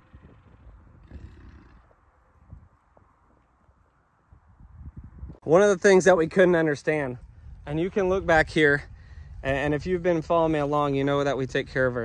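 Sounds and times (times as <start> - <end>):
soft outdoor rustle: 0.0 - 12.0.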